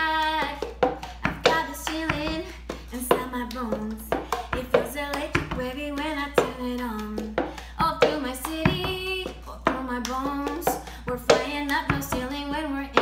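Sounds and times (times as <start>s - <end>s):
woman singing a cappella: 0.0s - 13.0s.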